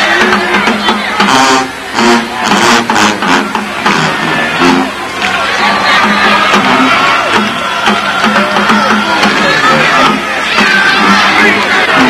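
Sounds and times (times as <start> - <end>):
drum hits: 0.0 - 5.0, 5.7 - 12.0
marching band brass: 0.0 - 12.0.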